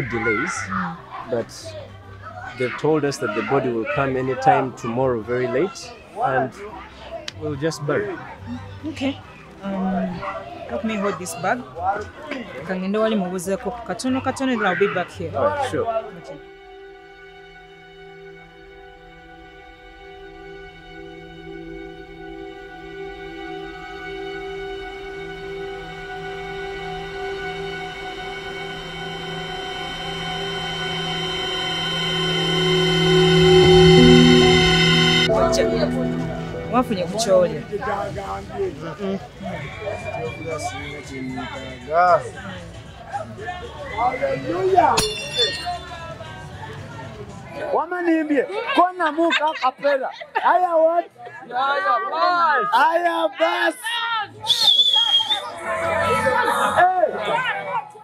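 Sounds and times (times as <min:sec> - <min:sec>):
people chattering: 0:00.0 - 0:17.4, 0:20.2 - 0:58.0
film score sustained chords: 0:16.0 - 0:38.9
high whistle: 0:26.7 - 0:37.3, 0:45.0 - 0:46.0, 0:54.4 - 0:56.7.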